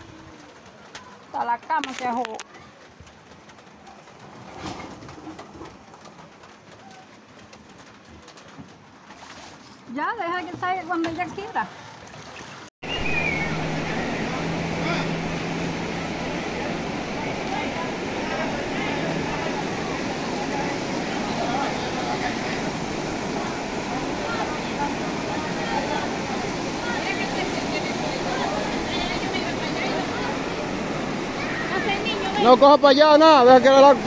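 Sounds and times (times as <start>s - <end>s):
floodwater rushing: 0.0s - 34.0s.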